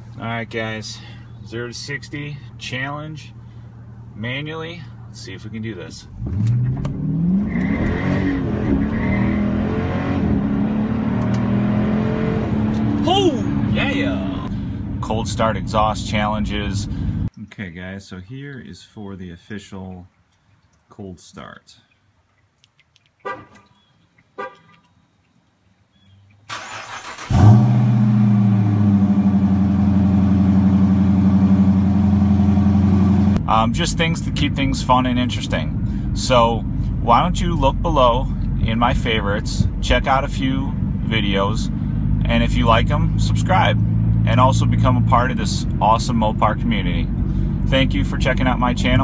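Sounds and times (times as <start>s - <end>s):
car engine accelerating hard: 6.2s - 15.1s, 26.5s - 34.7s
car engine starting and idling: 26.5s - 49.0s.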